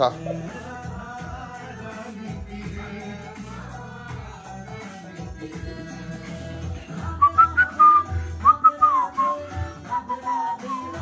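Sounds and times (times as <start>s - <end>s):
devotional music from television: 0.0s - 11.0s.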